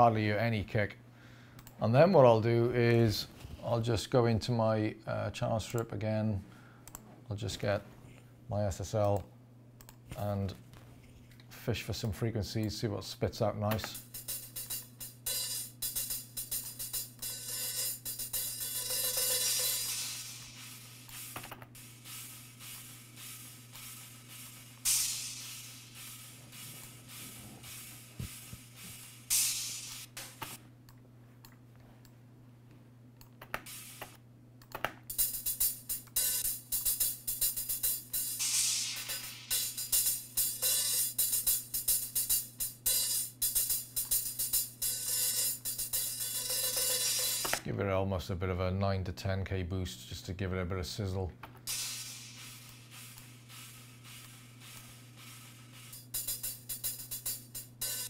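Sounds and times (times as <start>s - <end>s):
hi-hat strokes: 11.8s - 30.6s, 33.6s - 34.2s, 35.1s - 47.6s, 51.7s - 58.0s.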